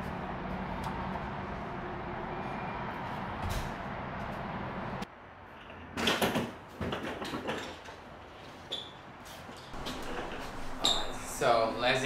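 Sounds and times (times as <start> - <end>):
road traffic rumble: 0.0 - 6.0, 7.9 - 12.0.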